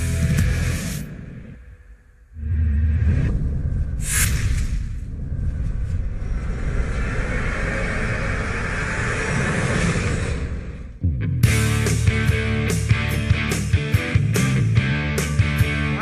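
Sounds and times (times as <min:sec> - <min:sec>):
deep rumble: 0:02.2 - 0:12.6
whoosh: 0:02.3 - 0:11.0.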